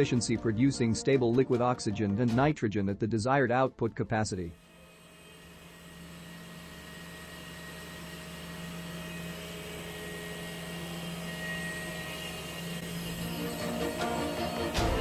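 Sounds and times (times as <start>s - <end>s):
machinery low hum: 4.5s - 15.0s
faint high whine: 4.6s - 14.7s.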